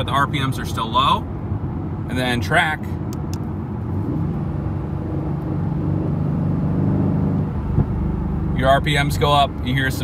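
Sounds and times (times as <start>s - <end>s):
car engine drone from cabin: 0.0s - 10.0s.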